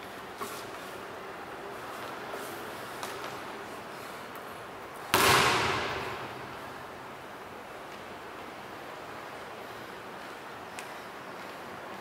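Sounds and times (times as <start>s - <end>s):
steady background hiss: 0.0s - 12.0s
loud echoing bang: 5.1s - 7.0s.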